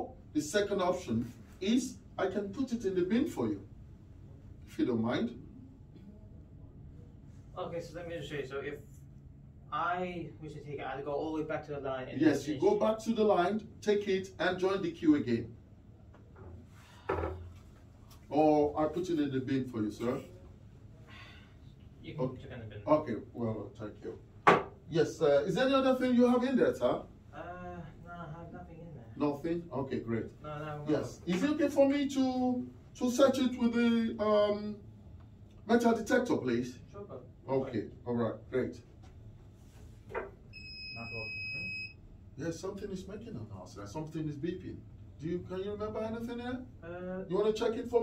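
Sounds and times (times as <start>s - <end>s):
metal detector high-pitched beep: 40.6s - 41.9s.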